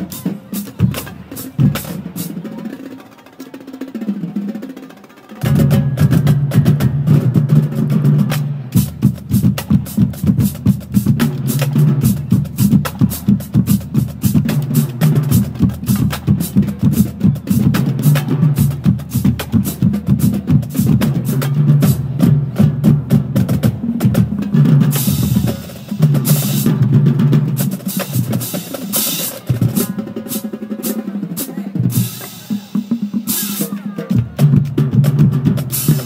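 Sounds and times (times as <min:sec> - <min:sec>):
marching drumline cadence: 0:00.0 - 0:36.0.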